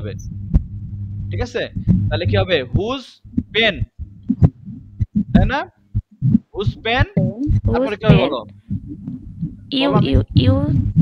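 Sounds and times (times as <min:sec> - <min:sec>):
low hum: 0:00.0 - 0:11.0
person speaking over video call: 0:06.6 - 0:08.5.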